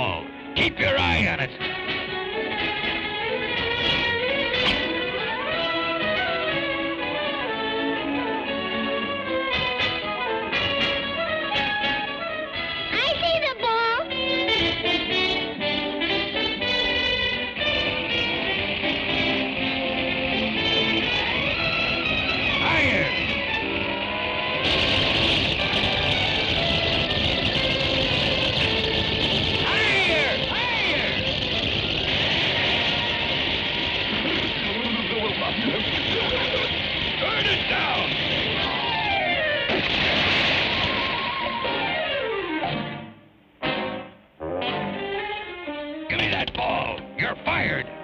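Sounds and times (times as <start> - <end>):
cartoon orchestral music: 0.1 - 31.5, 40.7 - 48.0.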